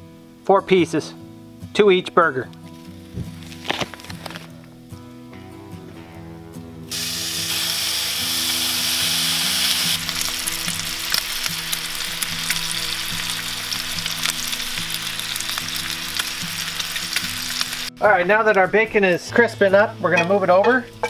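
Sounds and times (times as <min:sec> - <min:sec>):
bacon sizzling on a griddle: 0:06.9 - 0:18.6.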